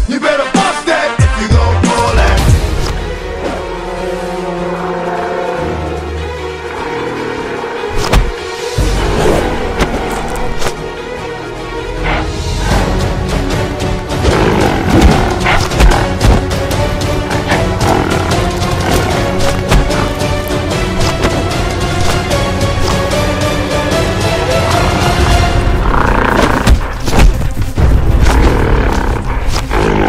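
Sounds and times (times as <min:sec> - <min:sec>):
loud action music: 0:00.0 - 0:30.0
animal roar: 0:14.2 - 0:16.5, 0:17.2 - 0:20.4, 0:24.8 - 0:26.9, 0:28.2 - 0:30.0
large animal roaring: 0:17.2 - 0:20.3.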